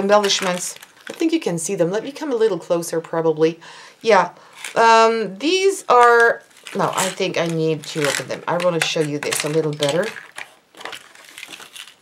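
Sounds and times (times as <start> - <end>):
handling rustles: 0.0 - 1.4, 4.5 - 12.0.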